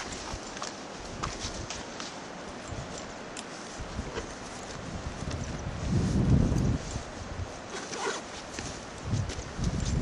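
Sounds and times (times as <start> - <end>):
footsteps on stony path: 0.0 - 10.0
steady background hiss: 0.0 - 10.0.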